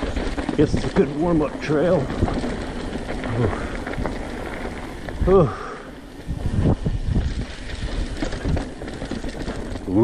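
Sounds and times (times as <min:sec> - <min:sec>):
bike rattling and knocking: 0:00.0 - 0:10.0
bike tyres rumbling over stones: 0:00.0 - 0:10.0.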